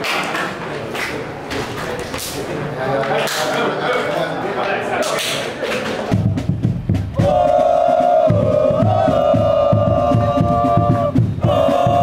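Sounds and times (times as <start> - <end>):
steady drumbeat: 5.8 - 12.0
group chanting: 7.2 - 12.0.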